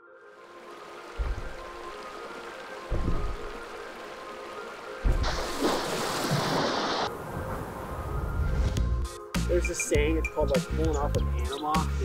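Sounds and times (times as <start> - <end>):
music with sustained tones: 0.0 - 12.0
deep bass hits: 2.9 - 3.6.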